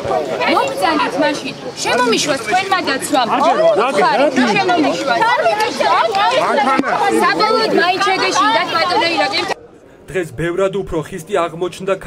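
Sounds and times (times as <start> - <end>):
voices talking over one another: 0.0 - 12.0.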